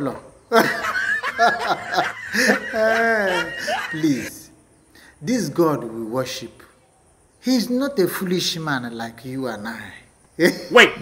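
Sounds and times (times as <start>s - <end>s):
man chuckling: 0.5s - 4.3s
man speaking: 2.4s - 4.6s, 5.2s - 6.7s, 7.4s - 11.0s.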